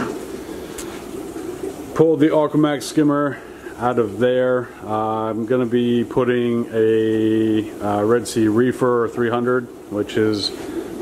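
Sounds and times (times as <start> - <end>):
aquarium equipment humming: 0.0 - 11.0.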